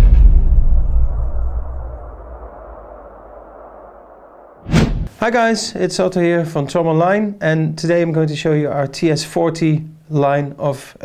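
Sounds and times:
low rumbling whoosh: 0.0s - 5.1s.

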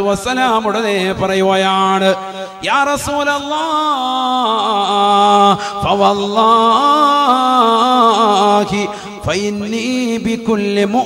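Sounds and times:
man chanting a sermon: 0.0s - 11.0s.

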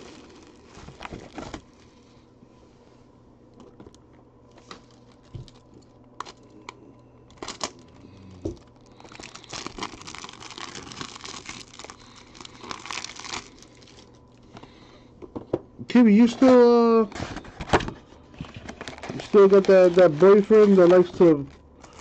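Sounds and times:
plastic wrapping crinkling and tearing: 0.0s - 1.8s, 4.5s - 6.7s, 7.3s - 14.4s, 18.4s - 22.0s.

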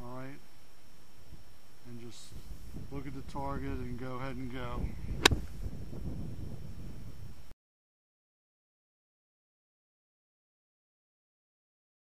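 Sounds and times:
wind noise on microphone: 1.2s - 7.5s
golf club striking ball: 5.2s - 5.6s.

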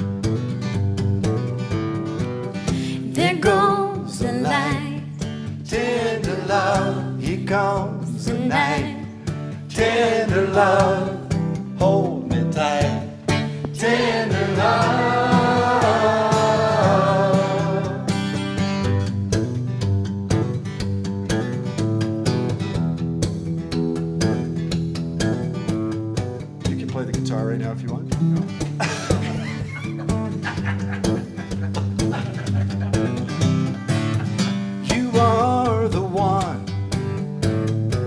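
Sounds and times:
acoustic guitar strumming: 0.0s - 38.0s.

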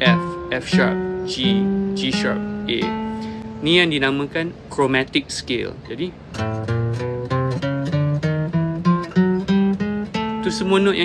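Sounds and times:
acoustic guitar plucking a scale: 0.0s - 11.0s.

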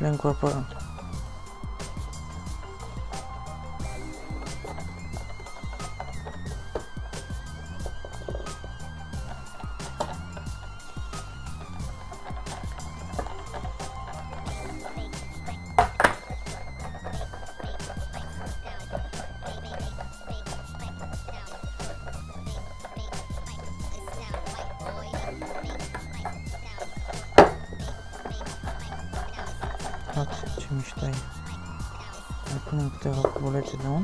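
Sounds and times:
background music with beat: 0.0s - 34.0s.

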